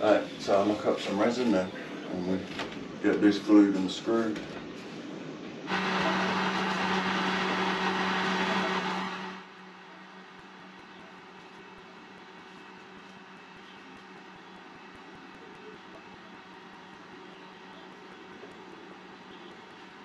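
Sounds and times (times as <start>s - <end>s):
faint steady hum: 0.0s - 20.0s
electric motor humming: 5.7s - 9.6s.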